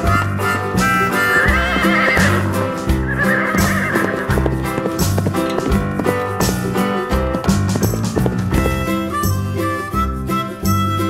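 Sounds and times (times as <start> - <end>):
music with steady beat: 0.0 - 11.0
horse whinnying: 1.2 - 6.6.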